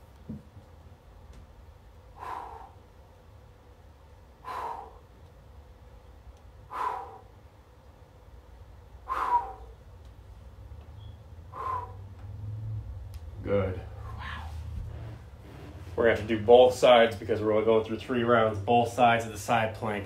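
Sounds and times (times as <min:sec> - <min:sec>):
man breathing heavily: 0:01.9 - 0:05.4, 0:06.4 - 0:07.8, 0:08.8 - 0:10.4, 0:11.4 - 0:16.1.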